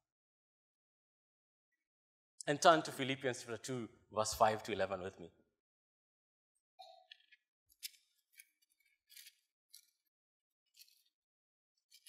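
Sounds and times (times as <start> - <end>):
thin pages turning: 7.8 - 10.0.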